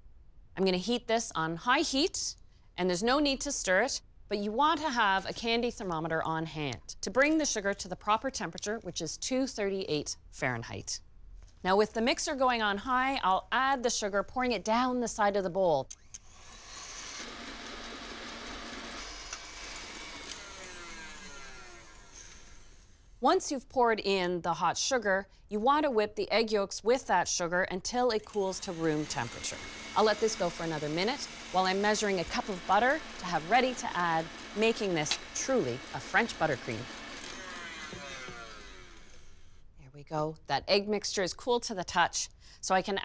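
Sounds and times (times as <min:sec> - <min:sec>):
stand mixer whirring: 0:17.0 - 0:22.6, 0:29.5 - 0:39.4.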